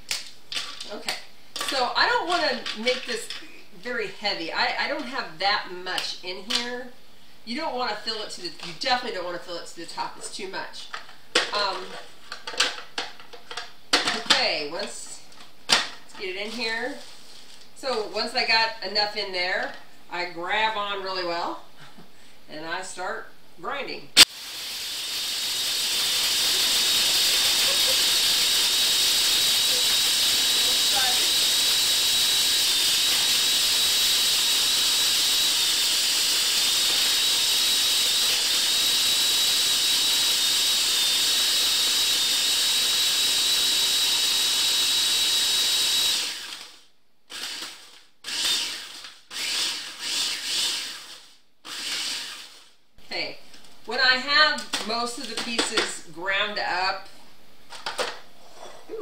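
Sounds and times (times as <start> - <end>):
food processor grinding: 24.2 - 52.7.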